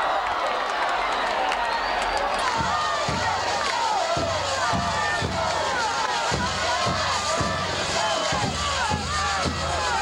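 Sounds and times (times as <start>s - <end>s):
crowd cheering: 0.0s - 10.0s
band music with drum beat: 2.1s - 10.0s.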